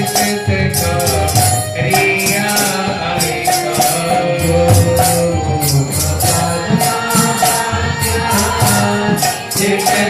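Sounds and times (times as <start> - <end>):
drum beat: 0.0 - 10.0
hand cymbal strikes: 0.0 - 10.0
voices singing: 0.0 - 10.0.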